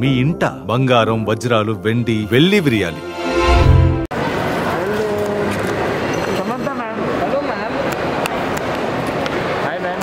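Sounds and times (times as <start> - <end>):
crowd hubbub: 4.1 - 10.0.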